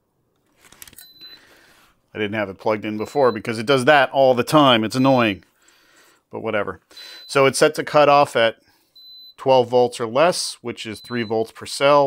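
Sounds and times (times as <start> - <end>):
short high-pitched beep: 1.0 - 1.4.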